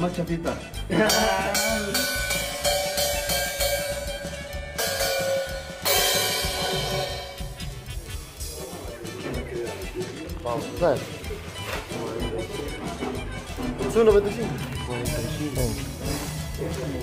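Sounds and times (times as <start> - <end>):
cymbals struck and ringing: 1.0 - 8.1.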